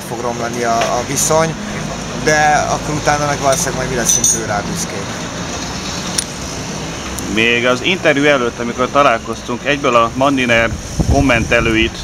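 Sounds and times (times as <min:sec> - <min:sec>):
street traffic passing: 0:00.0 - 0:12.0.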